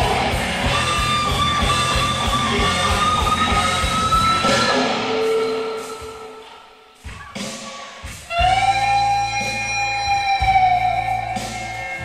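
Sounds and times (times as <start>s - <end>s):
bass and drums: 0.0s - 6.3s, 7.0s - 12.0s
electric guitar sustained bending note: 0.0s - 6.5s.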